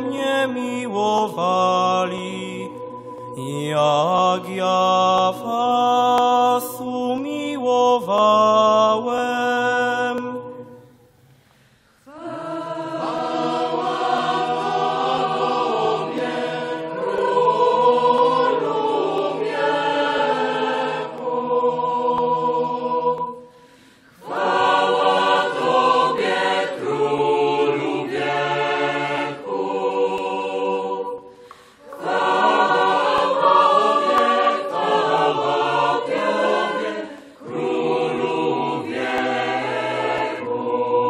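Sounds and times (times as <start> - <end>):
congregation singing together: 0.0 - 11.1, 12.0 - 41.0.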